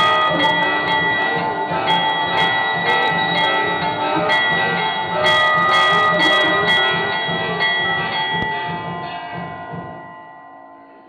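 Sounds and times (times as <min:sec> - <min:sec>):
steady drum beat: 0:00.0 - 0:10.1
temple bells ringing: 0:00.0 - 0:11.0.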